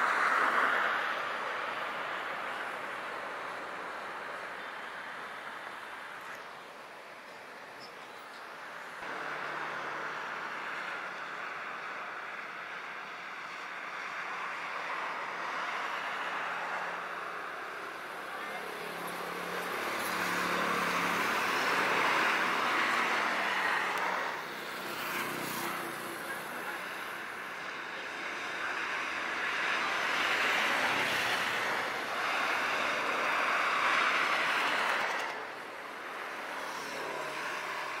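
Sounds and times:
cars passing on highway: 0.0s - 38.0s.

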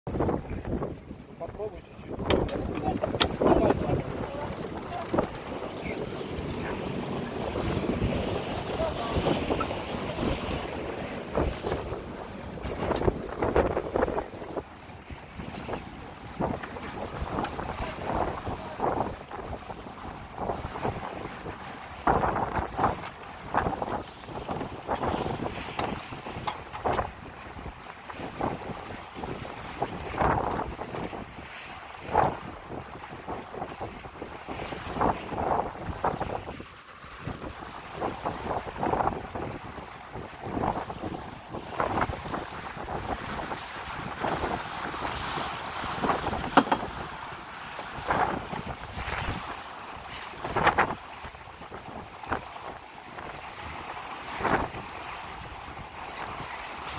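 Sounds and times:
water rushing along hull: 0.1s - 56.9s
wind buffeting microphone: 0.1s - 56.9s.

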